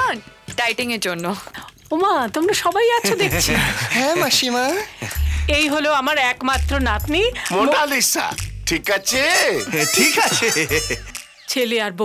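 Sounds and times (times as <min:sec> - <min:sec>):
music with bass beat: 0:06.6 - 0:07.6, 0:08.4 - 0:11.2.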